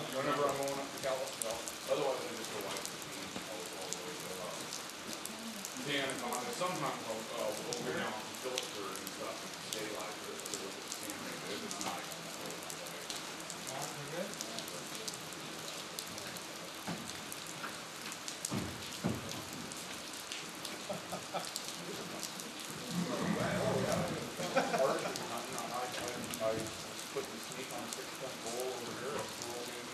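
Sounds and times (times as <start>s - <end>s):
rain falling: 0.0s - 29.9s.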